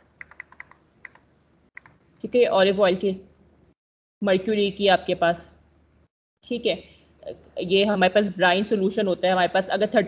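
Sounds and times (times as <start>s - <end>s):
keyboard keys clicking: 0.0s - 1.2s.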